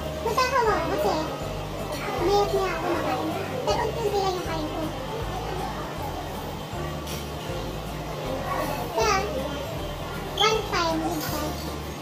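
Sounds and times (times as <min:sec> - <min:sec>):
children's voices: 0:00.0 - 0:07.1, 0:08.1 - 0:11.7
background music: 0:00.0 - 0:12.0.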